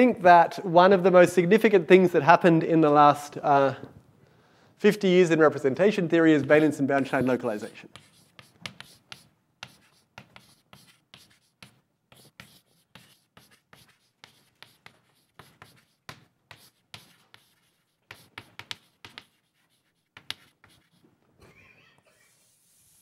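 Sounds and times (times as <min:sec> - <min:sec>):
chalk tapping and scratching: 0:06.4 - 0:21.0, 0:22.3 - 0:23.0.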